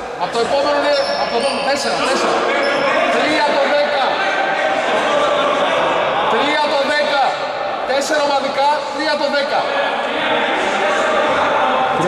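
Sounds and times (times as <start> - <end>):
men talking in a hall: 0.0 - 12.0.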